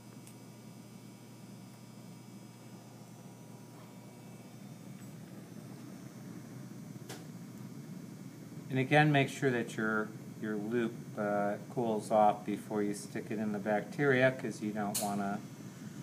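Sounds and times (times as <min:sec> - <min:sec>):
burner flame hissing: 0:01.7 - 0:16.0.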